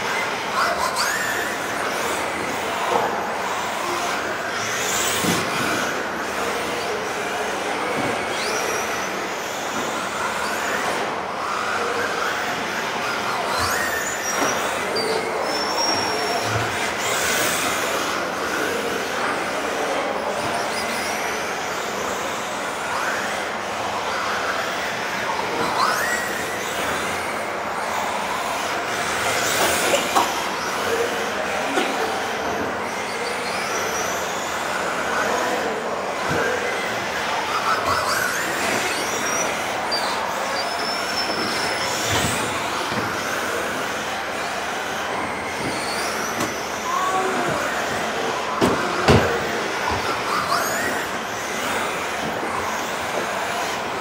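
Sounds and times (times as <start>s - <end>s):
model car motors whining: 0.0s - 54.0s.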